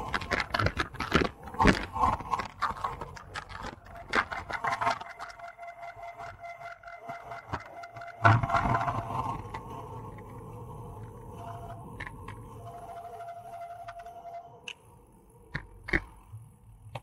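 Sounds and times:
bicycle coasting rumble: 0:00.0 - 0:17.0
faint steady whine: 0:00.0 - 0:17.0.

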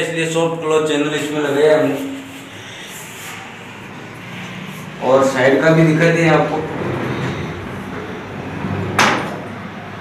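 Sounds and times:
sliding door rolling on track: 0:06.6 - 0:09.9.

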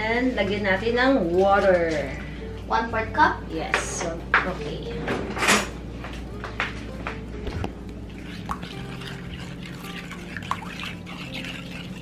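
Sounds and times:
soft background music: 0:00.0 - 0:12.0
spoon stirring batter: 0:08.1 - 0:12.0.

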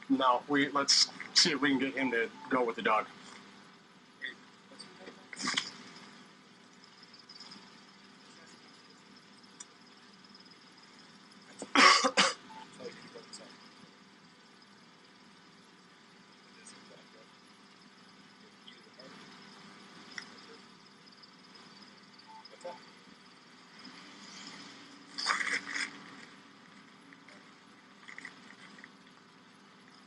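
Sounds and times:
low steady hum: 0:00.0 - 0:30.0
person coughing: 0:11.7 - 0:12.5.

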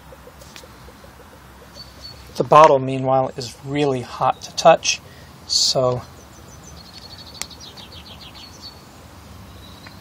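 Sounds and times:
bird trilling: 0:00.0 - 0:02.4, 0:06.0 - 0:08.8
outdoor background noise: 0:00.0 - 0:10.0.

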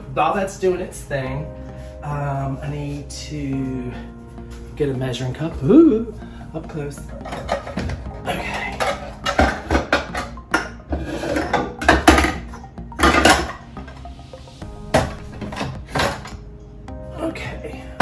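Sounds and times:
music: 0:00.0 - 0:18.0
dishes and glassware clinking: 0:07.1 - 0:14.0, 0:14.9 - 0:16.4.

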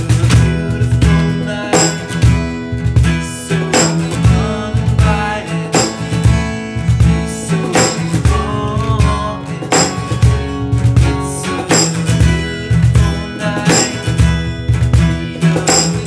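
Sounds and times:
cajon beat: 0:00.0 - 0:16.0
strummed acoustic guitar: 0:00.0 - 0:16.0.

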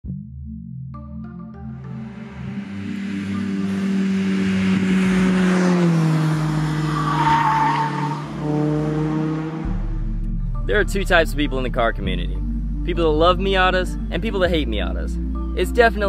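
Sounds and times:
car engine driving past: 0:01.8 - 0:10.2
tyre squeal: 0:06.7 - 0:08.4
soft background music: 0:09.0 - 0:16.0.

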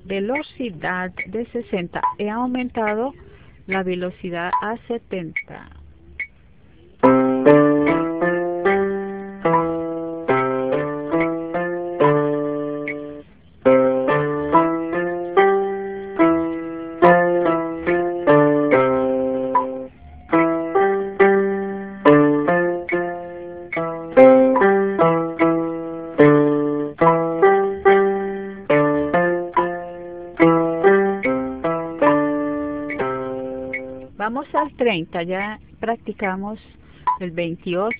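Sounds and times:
electronic keyboard piano exercises: 0:00.0 - 0:37.9.

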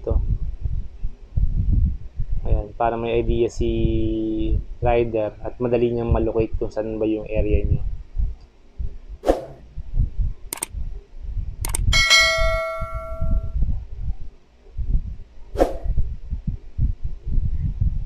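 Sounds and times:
soft low thumps: 0:00.1 - 0:02.5, 0:07.7 - 0:14.2, 0:15.8 - 0:18.0
sharp clicks: 0:10.5 - 0:10.7, 0:11.6 - 0:11.9
bell ding: 0:11.9 - 0:13.5.

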